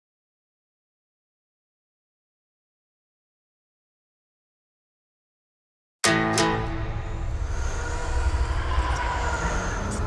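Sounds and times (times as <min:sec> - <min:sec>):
music: 0:06.0 - 0:10.0.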